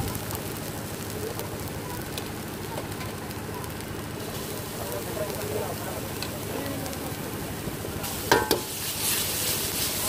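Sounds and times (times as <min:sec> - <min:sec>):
garlic sizzling in hot wok: 0:00.0 - 0:10.0
ladle striking wok: 0:08.0 - 0:10.0.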